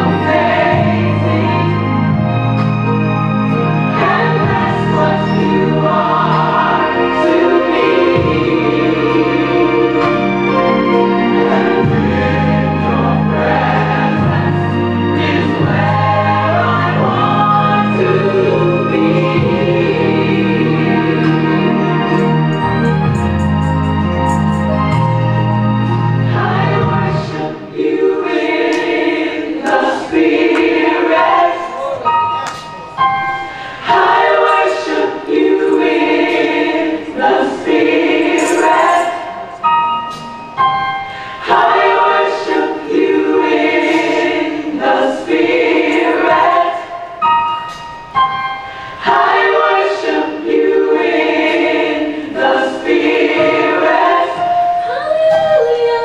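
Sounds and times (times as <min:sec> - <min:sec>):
organ-like held chords: 0:00.0 - 0:54.4
gospel choir singing: 0:00.0 - 0:56.0.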